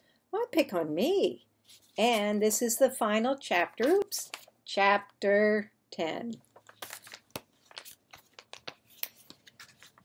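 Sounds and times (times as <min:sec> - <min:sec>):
book and paper rustling: 0:01.6 - 0:02.5, 0:03.5 - 0:04.6, 0:06.4 - 0:10.0.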